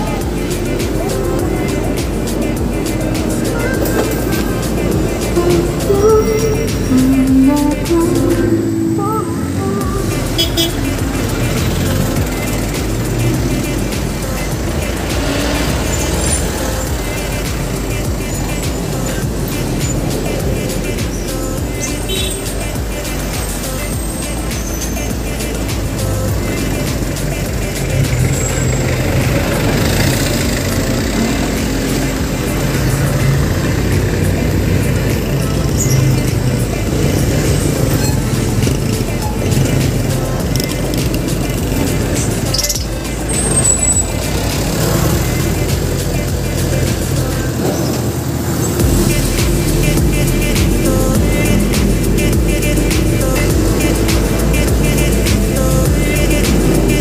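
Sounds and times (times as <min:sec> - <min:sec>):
background music: 0:00.0 - 0:57.0
street traffic rumble: 0:00.0 - 0:57.0.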